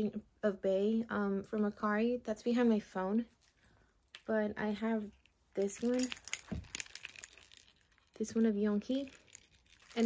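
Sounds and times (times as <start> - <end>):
light plastic clicks and clinks: 5.1 - 10.0.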